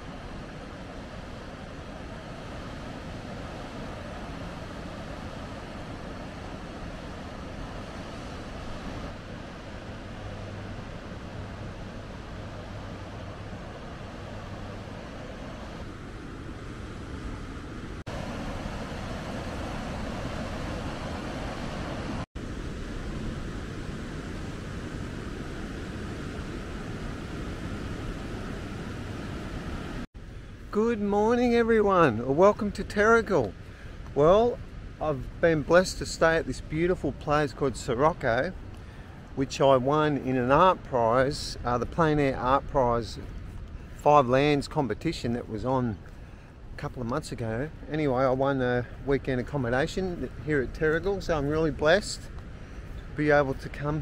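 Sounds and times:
ocean surf: 0.0s - 54.0s.

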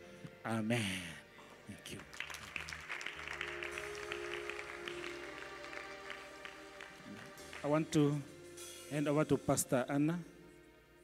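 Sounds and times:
soft instrumental music: 0.0s - 11.0s
congregation clapping: 1.5s - 8.4s.

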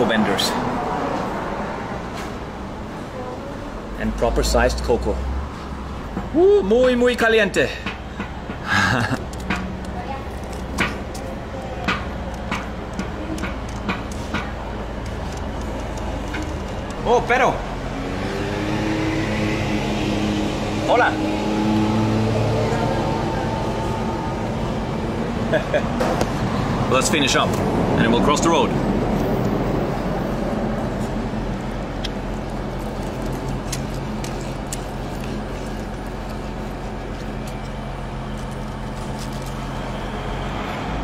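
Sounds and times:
vehicle engine humming: 0.0s - 41.0s.

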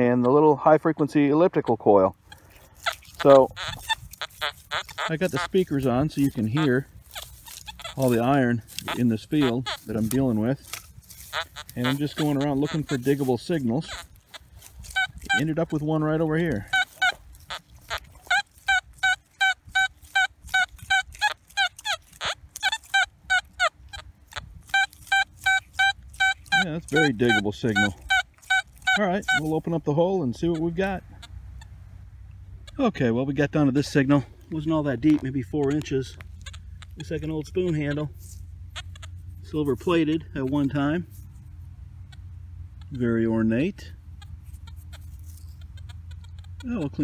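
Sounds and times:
low steady rumble: 0.0s - 47.0s
metal detector beeping: 2.3s - 31.3s, 34.5s - 41.2s, 42.1s - 47.0s.

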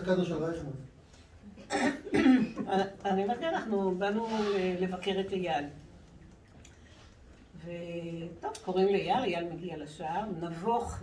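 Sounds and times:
person coughing: 1.6s - 2.7s.

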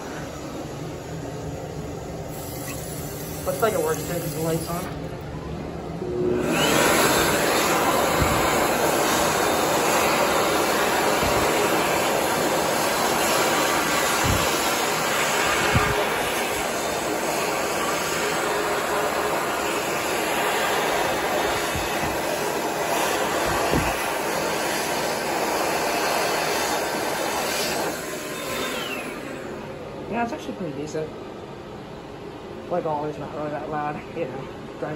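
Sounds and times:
hand dryer blowing air: 0.0s - 5.2s, 5.9s - 30.8s.

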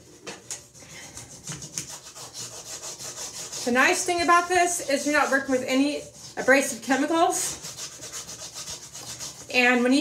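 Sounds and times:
plastic hanger scraping bathtub: 1.2s - 10.0s.

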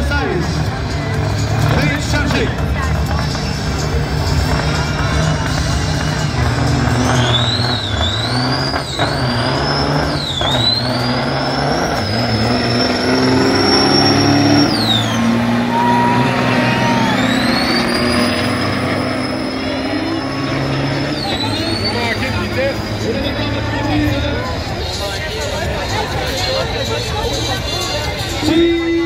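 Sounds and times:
truck engines at full throttle: 0.0s - 29.0s
high turbo whistle: 6.8s - 22.6s.

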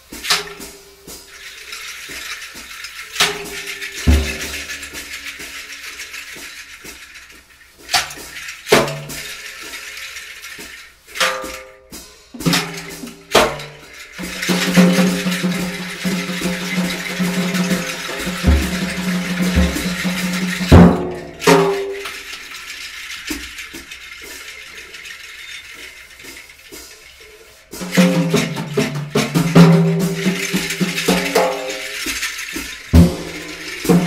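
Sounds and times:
drum and cymbal strikes: 0.0s - 22.5s, 25.8s - 34.0s.

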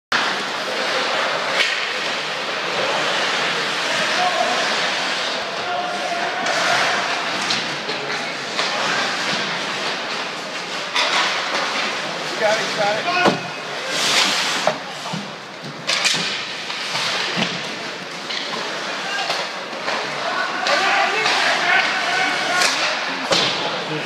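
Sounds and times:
skate blades scraping ice: 0.2s - 24.0s
sticks and puck clacking: 0.2s - 24.0s
indistinct shouting voices: 3.7s - 7.6s, 12.4s - 13.6s, 18.8s - 23.6s.

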